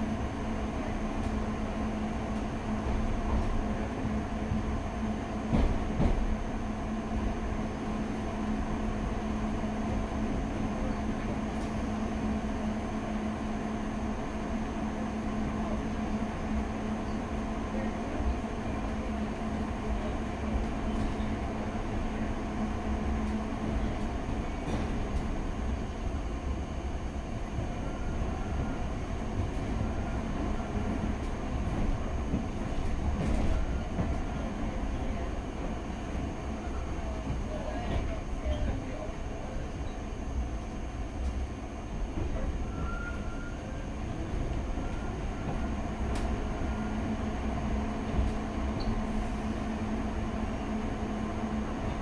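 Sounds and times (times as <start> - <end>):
train wheels rumbling on track: 0.0 - 52.0.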